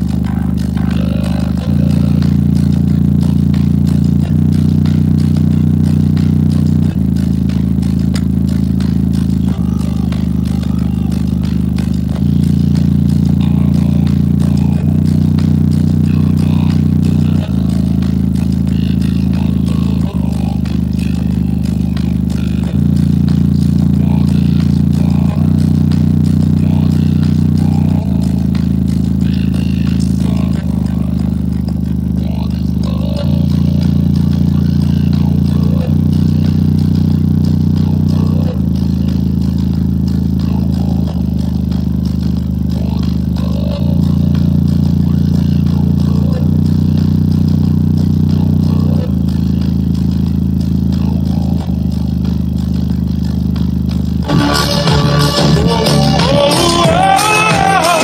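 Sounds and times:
deep bass notes from speaker: 0.0s - 58.0s
fuller music with higher sounds: 0.0s - 58.0s.

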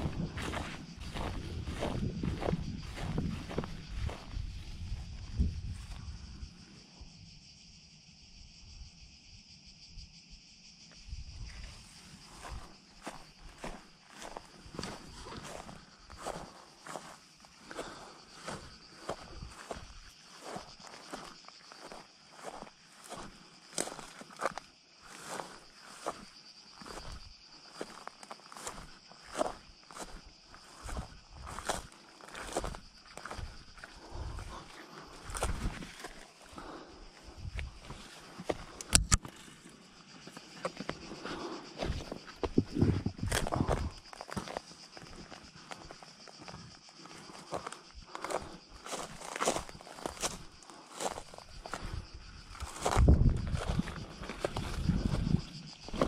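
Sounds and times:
footsteps on grass and rubble: 0.0s - 6.2s, 12.2s - 56.0s.

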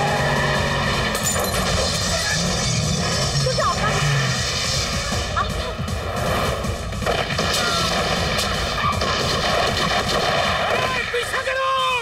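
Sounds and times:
car engine accelerating: 0.0s - 6.9s
background music: 0.0s - 12.0s.

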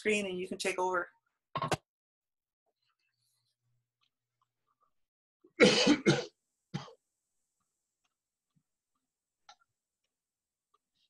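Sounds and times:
person coughing: 5.6s - 7.0s.

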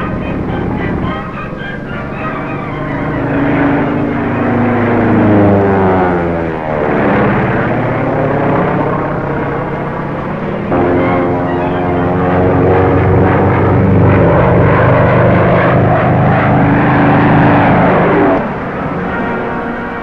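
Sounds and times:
propeller plane engine droning: 0.0s - 20.0s.

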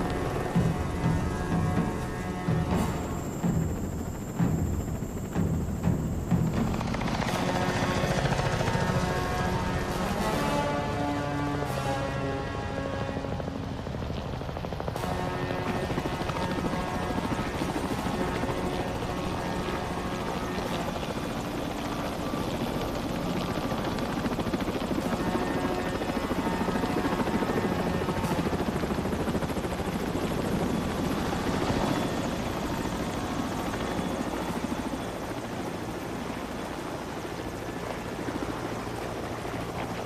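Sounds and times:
helicopter rotor beating: 0.0s - 40.0s.

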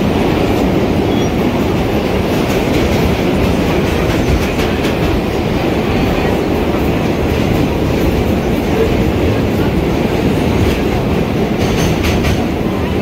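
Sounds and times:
subway car rumbling on track: 0.0s - 13.0s.

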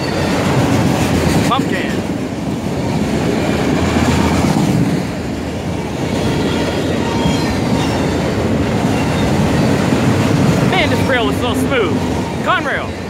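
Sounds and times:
train wheels rumbling on rail: 0.0s - 13.0s
high wheel squeal: 6.1s - 9.7s.

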